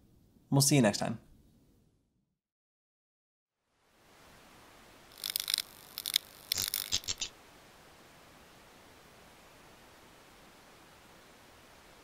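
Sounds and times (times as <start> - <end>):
faint steady hiss: 3.6 - 12.0
scratchy hissy noise bursts with clicks: 5.1 - 7.4.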